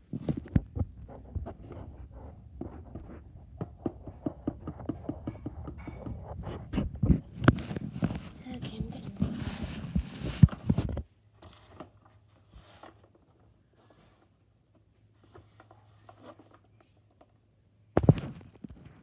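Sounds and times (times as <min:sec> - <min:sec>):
fingers rubbing on phone: 0:00.2 - 0:10.9.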